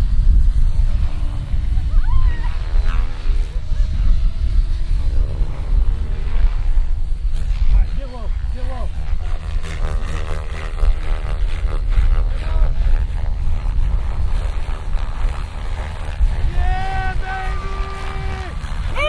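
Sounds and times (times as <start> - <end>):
model helicopters flying: 0.0 - 19.0.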